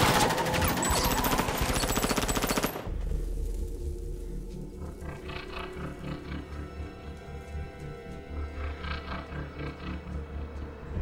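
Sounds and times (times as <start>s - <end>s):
rapid automatic gunfire: 0.0s - 2.9s.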